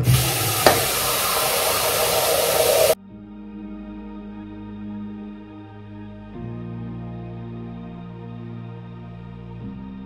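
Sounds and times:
sink tap running: 0.0s - 3.0s
soft background music: 0.0s - 10.0s
tap click: 0.6s - 0.9s.

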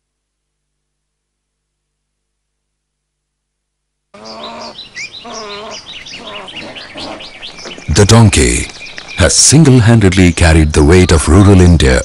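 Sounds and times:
low bird calls: 4.1s - 11.7s
wild birds chirping: 4.1s - 12.0s.

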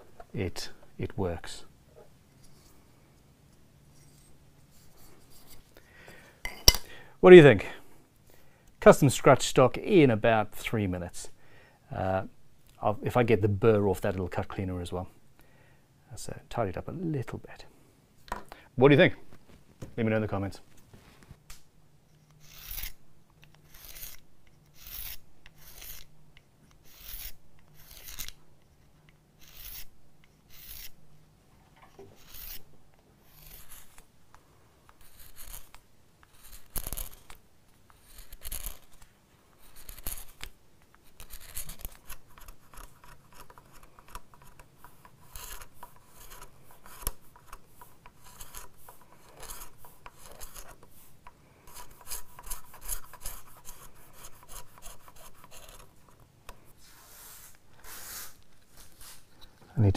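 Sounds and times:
blade rasping on abrasive block: 22.4s - 23.0s, 23.7s - 26.1s, 26.8s - 28.3s, 29.4s - 29.9s, 30.5s - 31.0s, 32.2s - 32.6s, 33.2s - 34.0s, 44.8s - 50.8s, 51.6s - 55.9s.

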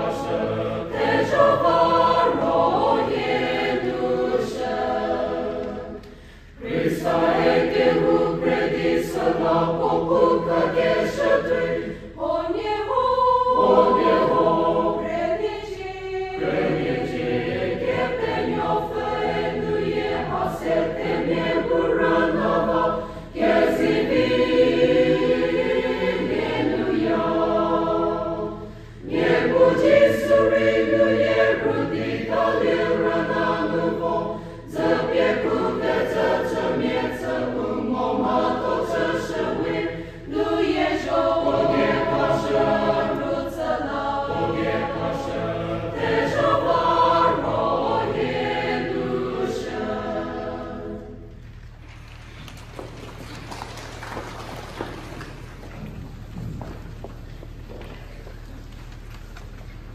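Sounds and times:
choir singing a hymn: 0.0s - 51.5s.

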